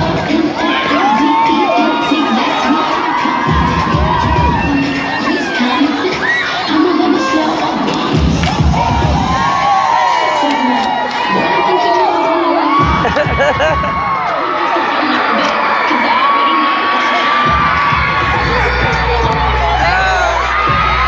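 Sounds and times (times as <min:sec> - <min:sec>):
crowd cheering and whooping: 0:00.0 - 0:21.0
loud dance music: 0:00.0 - 0:21.0.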